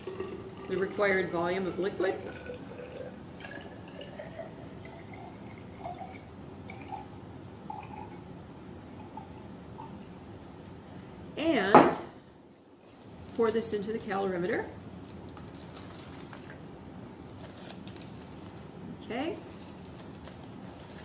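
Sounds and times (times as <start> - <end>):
liquid pouring into glass cylinder: 0.0 - 10.2
woman's voice: 0.7 - 2.3, 11.4 - 12.0, 13.4 - 14.8, 19.0 - 19.4.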